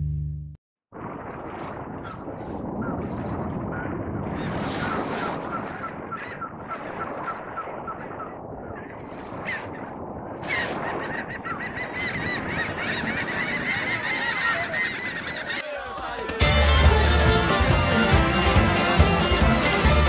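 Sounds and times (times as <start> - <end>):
sea and harbour noise: 1.1 - 20.0
seagulls calling: 3.7 - 19.9.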